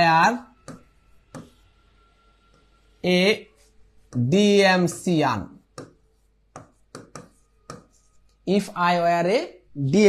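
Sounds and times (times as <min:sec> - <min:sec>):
stylus tapping on glass: 0:00.6 - 0:01.6, 0:06.6 - 0:07.9.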